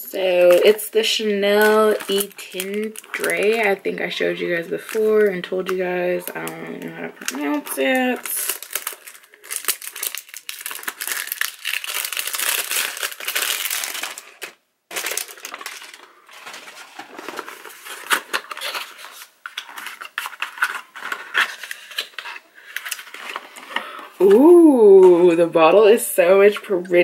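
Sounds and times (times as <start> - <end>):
shrink-wrap crinkling and tearing: 0.2 - 25.1.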